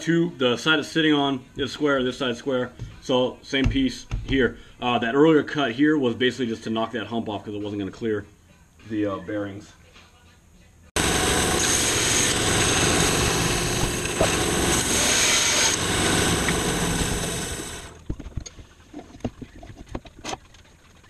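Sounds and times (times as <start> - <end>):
bandsaw cutting log: 11.0 - 18.0.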